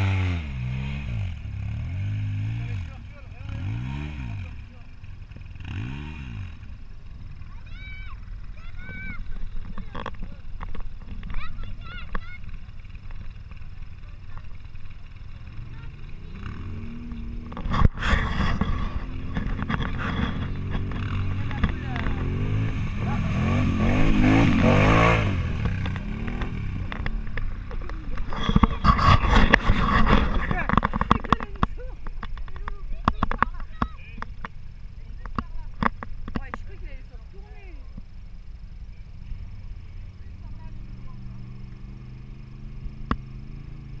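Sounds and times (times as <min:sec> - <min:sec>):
quad bike engine revving: 0:00.0 - 0:44.0.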